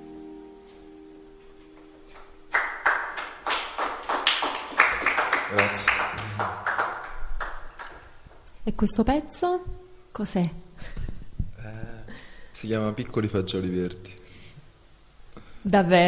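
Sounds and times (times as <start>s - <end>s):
acoustic guitar chord ringing: 0.0s - 3.1s
audience clapping: 2.1s - 8.4s.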